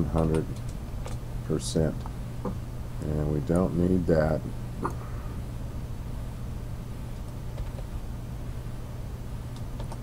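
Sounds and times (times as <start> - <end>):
low electrical hum and hiss: 0.0 - 10.0.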